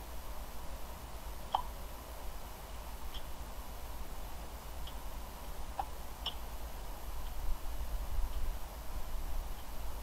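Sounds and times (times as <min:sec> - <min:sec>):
low electrical hum and hiss: 0:00.0 - 0:10.0.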